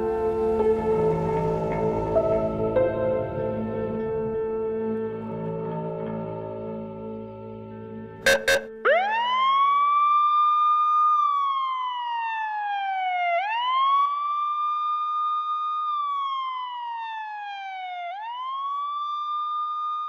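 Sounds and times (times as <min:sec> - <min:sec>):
siren wailing: 0:08.3 - 0:20.0.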